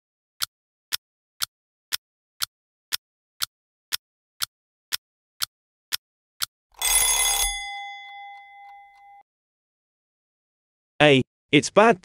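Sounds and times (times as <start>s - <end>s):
timer alarm ringing: 6.8s - 9.2s.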